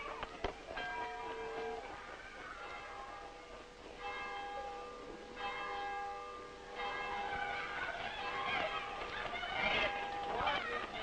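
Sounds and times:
large church bell ringing: 0.0s - 11.0s.

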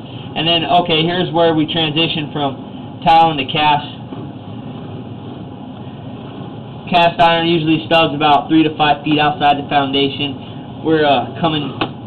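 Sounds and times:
steady mechanical drone: 0.0s - 12.0s.

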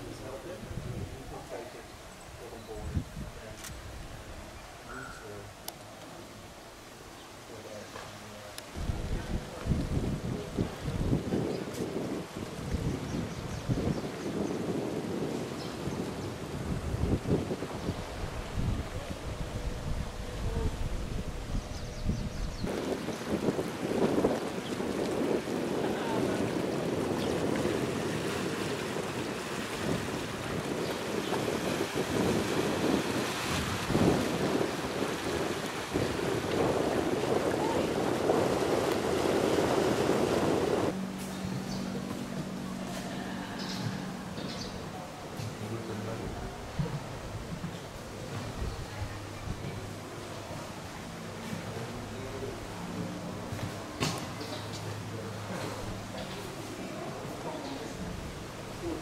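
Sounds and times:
wind buffeting microphone: 0.0s - 4.9s, 8.7s - 59.0s.

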